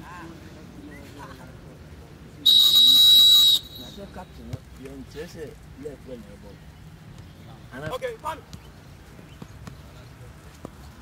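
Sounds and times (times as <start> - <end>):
referee's whistle blast: 2.4 - 4.0.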